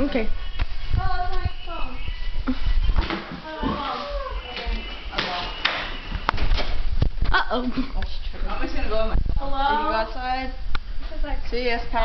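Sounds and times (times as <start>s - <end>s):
girls' voices: 0.0s - 5.6s, 7.3s - 12.0s
footsteps: 0.4s - 8.5s.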